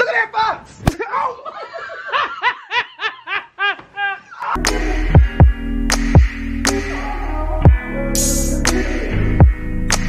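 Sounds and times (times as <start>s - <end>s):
woman laughing: 1.1s - 4.6s
electronic music with heavy beat: 4.5s - 10.0s.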